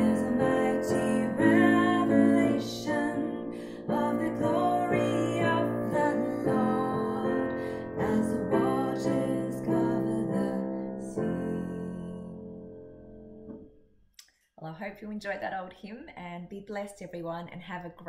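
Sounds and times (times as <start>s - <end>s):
woman singing a hymn: 0.0s - 12.4s
piano: 0.0s - 13.8s.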